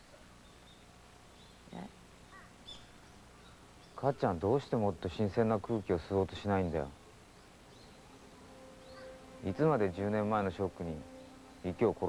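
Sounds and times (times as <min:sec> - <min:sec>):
faint high bird chirps: 0:00.0 - 0:04.1, 0:05.6 - 0:12.0.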